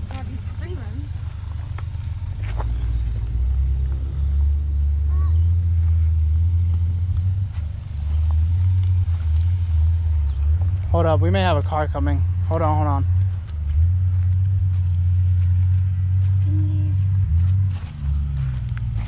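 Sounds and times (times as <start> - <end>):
rocks clicking under tyres: 0.0 - 4.0, 5.8 - 11.0, 17.2 - 19.0
pickup truck engine rumbling: 0.0 - 19.0.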